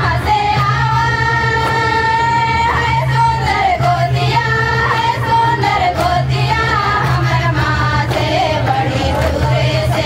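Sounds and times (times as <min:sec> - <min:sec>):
girls singing in unison: 0:00.0 - 0:10.0.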